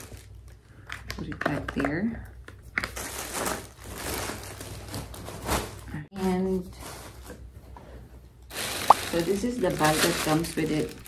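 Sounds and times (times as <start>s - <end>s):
plastic bag crinkling: 0.0s - 0.8s, 2.6s - 7.4s, 8.5s - 11.0s.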